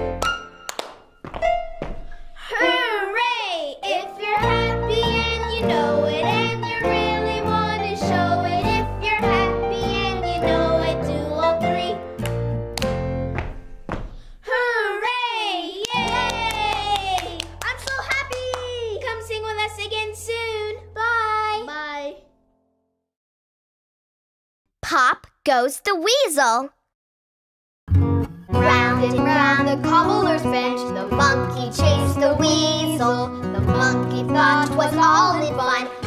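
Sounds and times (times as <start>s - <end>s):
children's music: 0.0s - 13.6s, 15.8s - 22.3s, 28.0s - 36.0s
hands clapping: 0.1s - 1.4s, 12.2s - 14.1s, 15.8s - 19.0s
foot stomps on a hard floor: 1.2s - 2.2s, 13.3s - 14.4s
child's excited voice: 2.4s - 3.8s, 14.4s - 22.2s, 24.8s - 26.7s
children shouting hooray: 14.6s - 17.4s.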